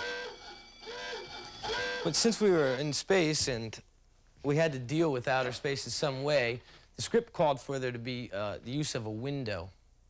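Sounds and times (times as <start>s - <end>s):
electronic alarm tone: 0.0s - 3.0s.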